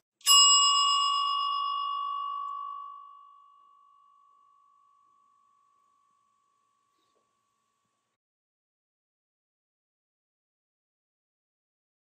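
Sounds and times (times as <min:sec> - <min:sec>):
bell ringing: 0:00.2 - 0:07.0.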